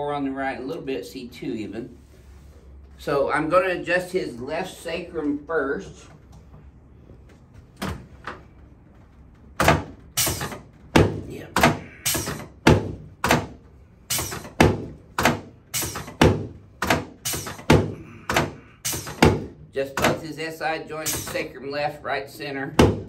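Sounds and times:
adjusting table thunks: 0:09.6 - 0:20.2.

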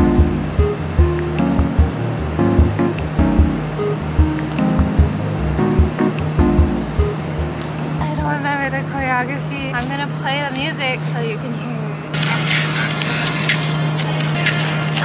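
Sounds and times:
background music with steady beat: 0:00.0 - 0:09.2.

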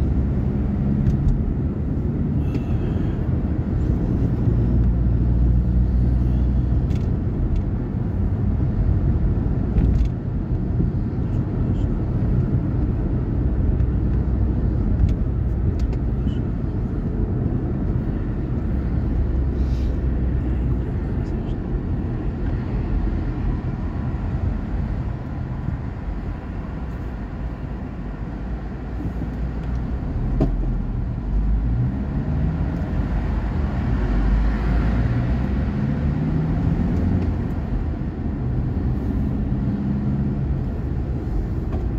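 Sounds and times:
car engine and tyre drone: 0:00.0 - 0:41.9.

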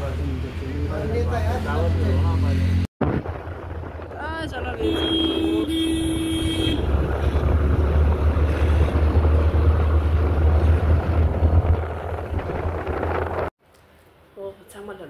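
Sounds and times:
road traffic: 0:00.0 - 0:14.7
wind rumbling on microphone: 0:03.0 - 0:13.5
vehicle horn: 0:04.7 - 0:07.4.

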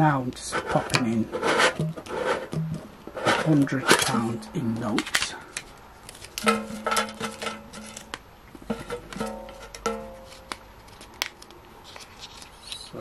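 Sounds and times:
banknotes rustling and crinkling: 0:00.2 - 0:13.0.

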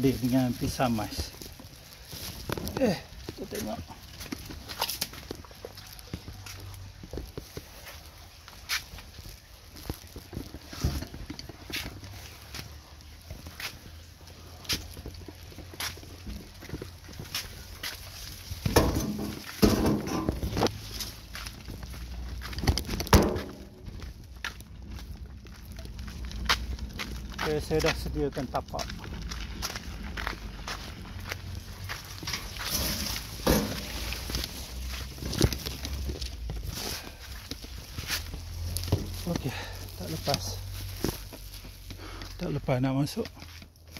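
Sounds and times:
footsteps: 0:00.0 - 0:43.9
wheelbarrow rattling: 0:00.0 - 0:43.9
loud bumps: 0:18.6 - 0:20.7, 0:32.3 - 0:34.4.

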